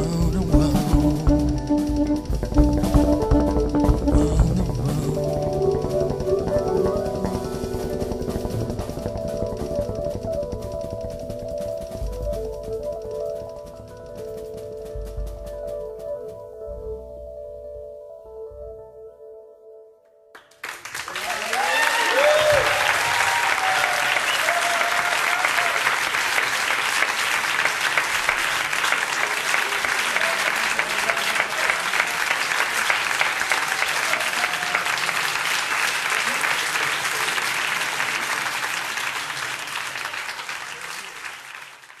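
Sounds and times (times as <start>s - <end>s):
audience applauding: 20.4s - 42.0s
crowd shouts: 21.2s - 25.9s.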